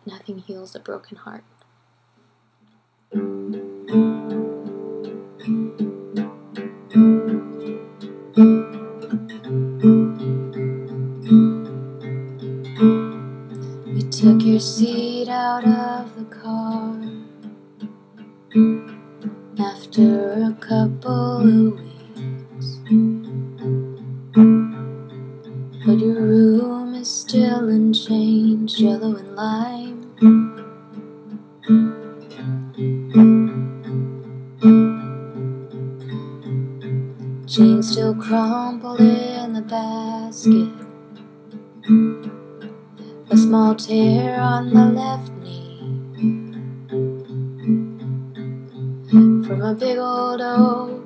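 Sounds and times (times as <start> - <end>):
acoustic guitar chords: 3.1 - 51.0
woman singing: 13.9 - 17.2, 19.6 - 22.9, 25.9 - 30.2, 37.5 - 40.8, 43.2 - 46.0, 49.2 - 51.0.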